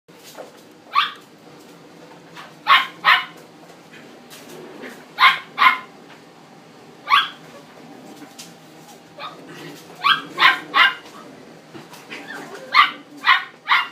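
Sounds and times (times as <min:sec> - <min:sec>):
puppy barking high: 0:00.9 - 0:01.3, 0:02.4 - 0:03.4, 0:05.1 - 0:06.0, 0:07.0 - 0:07.6, 0:09.2 - 0:11.2, 0:12.1 - 0:13.9.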